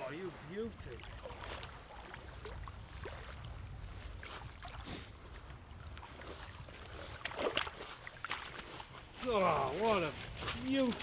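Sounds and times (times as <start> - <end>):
water at the shoreline: 0.0 - 11.0
wind: 0.0 - 11.0
fish splashing in shallows: 4.2 - 9.2.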